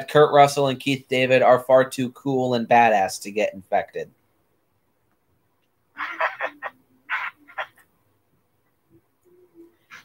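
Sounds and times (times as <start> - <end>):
person laughing: 6.0 - 7.8.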